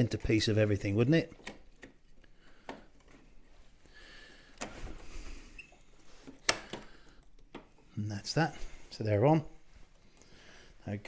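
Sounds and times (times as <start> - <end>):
small plastic clicks: 5.6 - 7.8.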